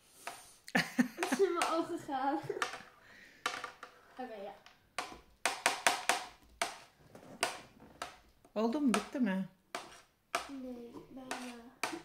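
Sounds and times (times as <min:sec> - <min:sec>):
metal fork scraping a tray: 0:11.3 - 0:12.0.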